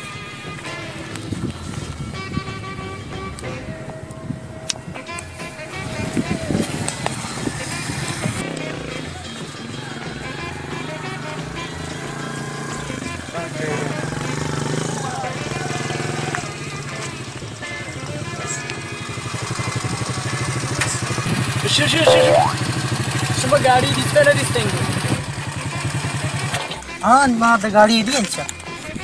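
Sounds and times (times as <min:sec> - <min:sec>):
men's voices: 0:05.7 - 0:17.1, 0:20.5 - 0:22.6
motorcycle engine running: 0:05.8 - 0:26.6
background music: 0:21.6 - 0:22.7.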